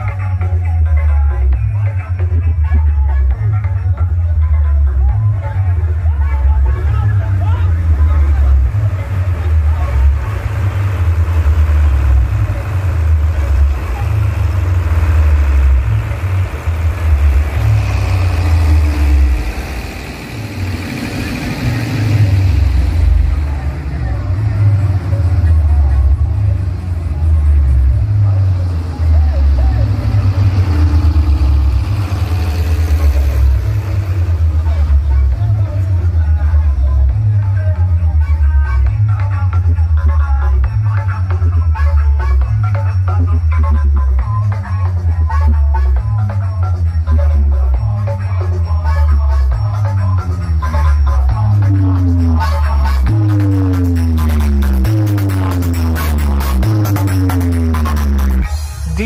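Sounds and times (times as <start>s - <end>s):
loud bass-heavy dj music: 0.0s - 59.0s
voices over music: 0.0s - 59.0s.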